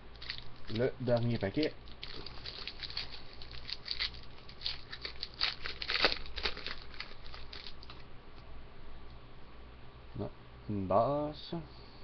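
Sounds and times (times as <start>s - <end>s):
foil wrapper tearing and crinkling: 0.2s - 8.0s.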